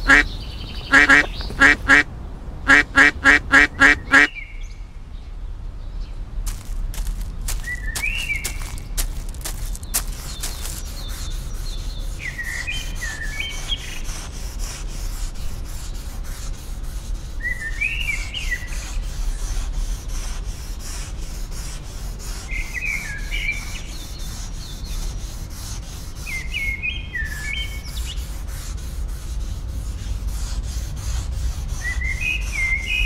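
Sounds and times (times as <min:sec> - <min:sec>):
fast scratching or rubbing: 0:00.0 - 0:02.0, 0:02.7 - 0:04.3, 0:06.5 - 0:33.0
songbird singing: 0:00.0 - 0:02.1, 0:02.7 - 0:04.9, 0:06.0 - 0:14.0.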